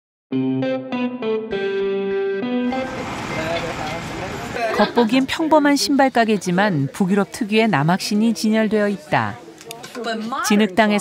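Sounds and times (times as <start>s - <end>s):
instrumental jingle: 0.4s - 4.0s
noisy ambience: 2.7s - 6.9s.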